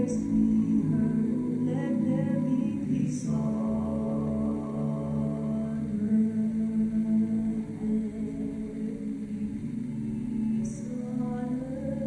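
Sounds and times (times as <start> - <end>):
wordless choral music: 0.0 - 12.0.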